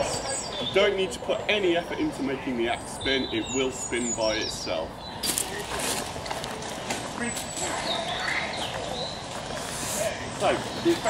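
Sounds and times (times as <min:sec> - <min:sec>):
faint voices: 0:00.0 - 0:11.0
outdoor background noise: 0:00.0 - 0:11.0.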